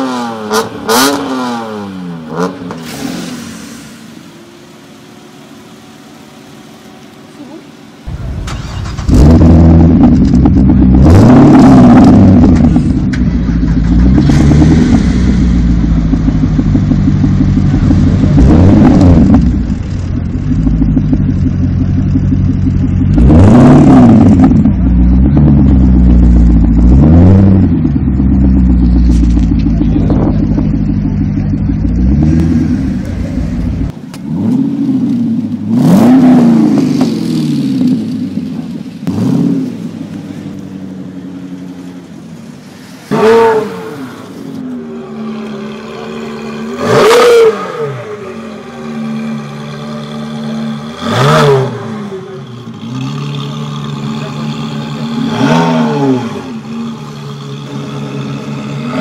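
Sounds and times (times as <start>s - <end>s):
engine revving: 0.0s - 3.5s, 8.1s - 40.6s, 43.0s - 59.0s
car engine idling: 3.4s - 35.8s, 36.7s - 39.1s, 39.7s - 58.9s.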